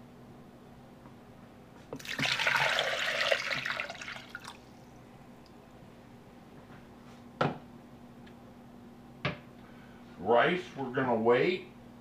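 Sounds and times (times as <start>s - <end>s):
water pouring and splashing: 2.0s - 4.6s.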